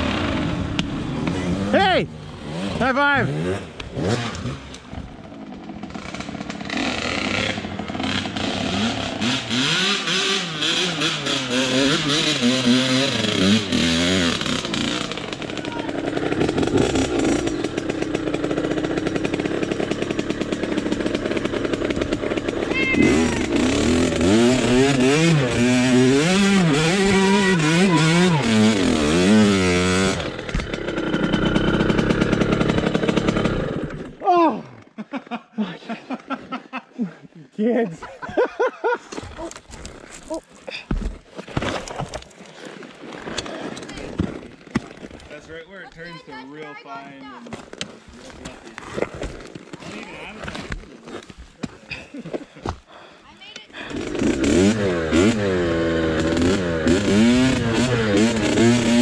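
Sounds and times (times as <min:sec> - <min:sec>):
dirt bike engine revving: 0:00.0 - 0:34.2, 0:53.8 - 0:59.0.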